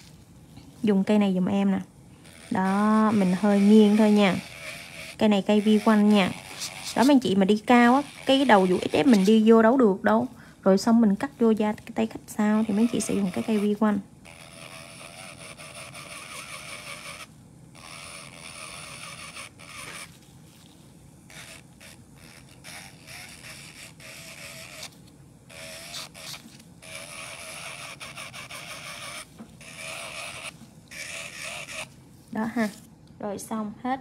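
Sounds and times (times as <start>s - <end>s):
electric nail drill whining: 2.2s - 9.5s, 12.4s - 20.2s, 21.3s - 31.9s.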